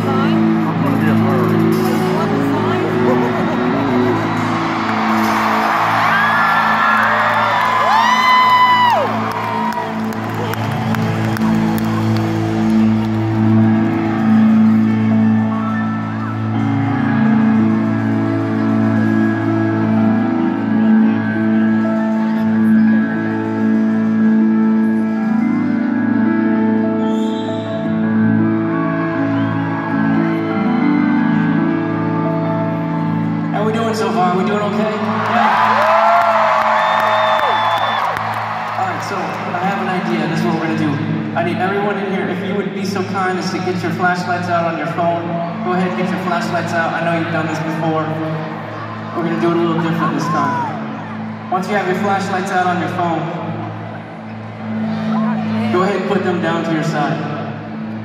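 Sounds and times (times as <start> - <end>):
sustained keyboard chords: 0.0 - 8.0, 9.1 - 37.1
crowd noise: 0.0 - 58.0
fans whooping and screaming: 2.9 - 17.4, 34.9 - 40.1, 47.6 - 52.1.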